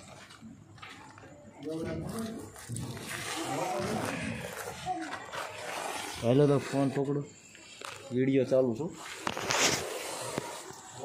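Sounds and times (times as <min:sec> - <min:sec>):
rough background noise: 0:00.0 - 0:11.0.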